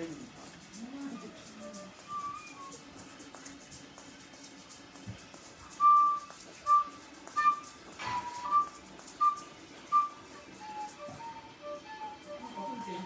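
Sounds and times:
person whistling a tune: 1.6 - 2.8, 5.8 - 13.0.

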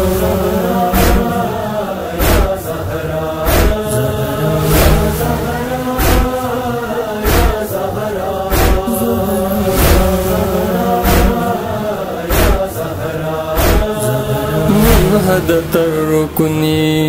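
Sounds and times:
male voices chanting: 0.0 - 17.0
deep chest-beating thumps: 2.2 - 2.6, 3.4 - 3.8, 4.7 - 5.2, 6.0 - 6.4, 7.2 - 7.6, 8.5 - 8.9, 11.0 - 11.4, 12.3 - 12.7, 13.6 - 13.9.

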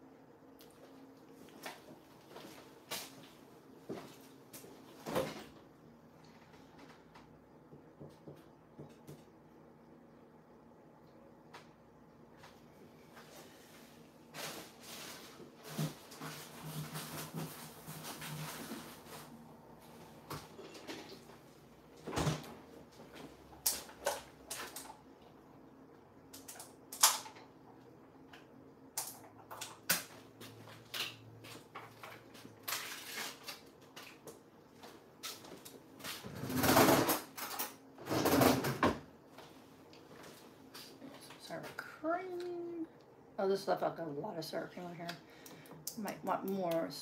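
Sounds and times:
rustling and clatter: 14.4 - 21.3.

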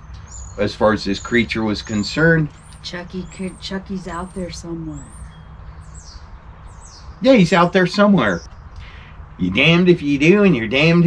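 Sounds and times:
small birds chirping: 0.0 - 11.0
steady low rumble: 0.0 - 11.0.

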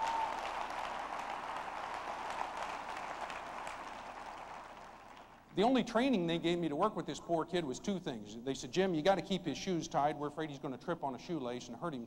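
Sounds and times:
audience applauding: 0.0 - 5.5.

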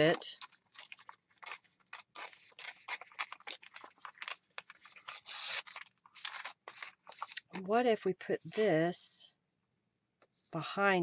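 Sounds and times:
paper tearing: 0.0 - 7.7.

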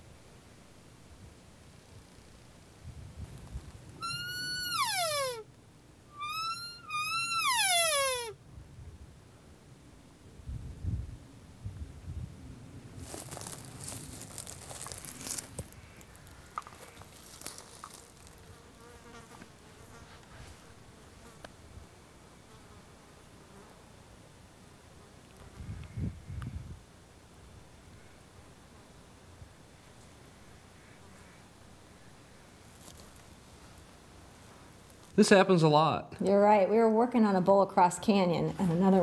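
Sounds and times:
elk bugling: 4.0 - 5.5, 6.1 - 8.4
scratchy rustling: 13.0 - 18.5.

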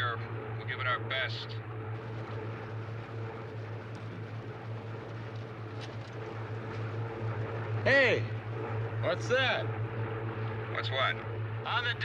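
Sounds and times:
propeller plane engine droning: 0.0 - 12.0.

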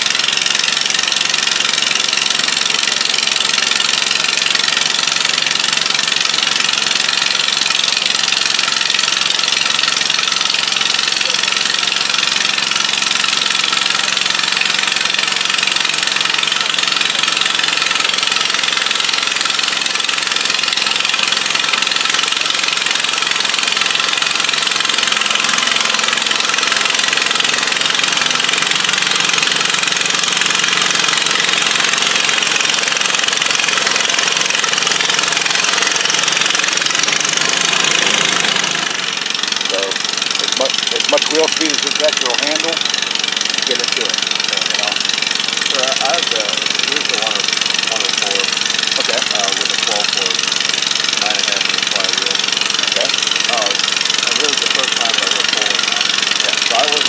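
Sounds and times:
tractor engine running hard: 0.0 - 57.0.

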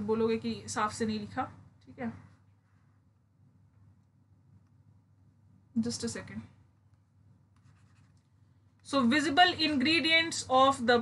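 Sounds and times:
woman speaking: 0.0 - 2.3, 5.7 - 6.6, 8.8 - 11.0
stylus scratching on tablet: 7.6 - 8.2.

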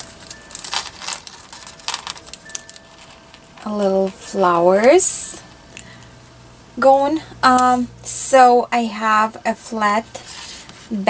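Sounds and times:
plastic bag crinkling: 0.0 - 6.0.

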